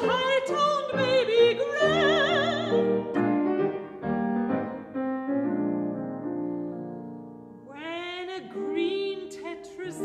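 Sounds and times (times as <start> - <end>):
solo piano chords: 0.0 - 10.0.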